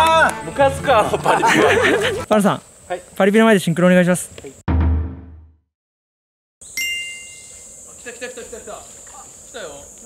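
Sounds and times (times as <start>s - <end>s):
high-pitched insect buzz: 6.6s - 10.0s
bright bell-like ding: 6.8s - 7.6s.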